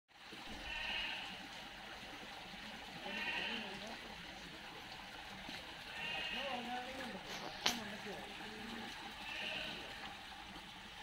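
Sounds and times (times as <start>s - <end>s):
animal calling: 8.5s - 10.1s.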